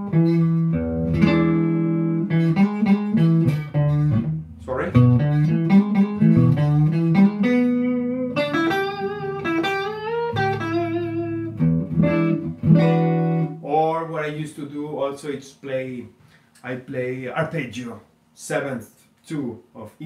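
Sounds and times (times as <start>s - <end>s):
clean electric guitar lead: 0.0s - 13.7s.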